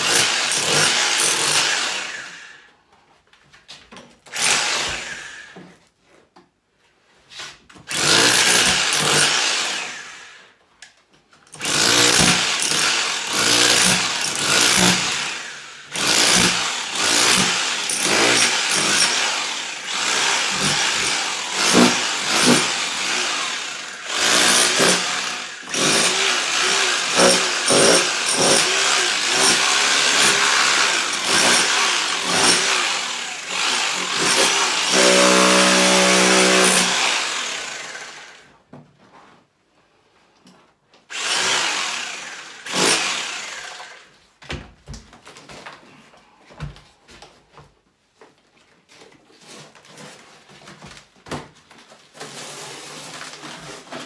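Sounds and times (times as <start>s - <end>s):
power tool hacking plaster: 0.0s - 2.4s, 4.3s - 5.5s, 7.9s - 10.2s, 11.5s - 38.5s, 41.1s - 44.1s.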